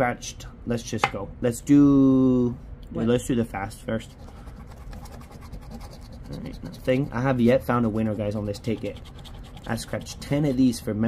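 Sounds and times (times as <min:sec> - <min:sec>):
coin scratching ticket: 0:04.7 - 0:10.8.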